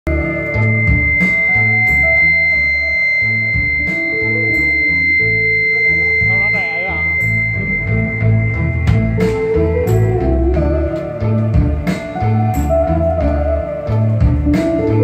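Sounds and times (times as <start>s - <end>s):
electronic keyboard music: 0.0s - 15.0s
steady high-pitched tone: 0.1s - 15.0s
wavering melodic line: 0.1s - 15.0s.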